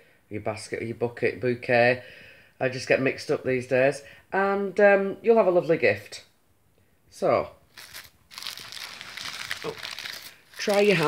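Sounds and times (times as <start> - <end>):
cellophane crinkling: 7.7 - 11.0.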